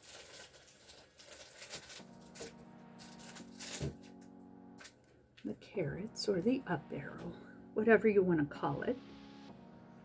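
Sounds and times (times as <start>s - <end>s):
faint steady pitched tone: 2.0s - 4.9s, 5.5s - 10.0s.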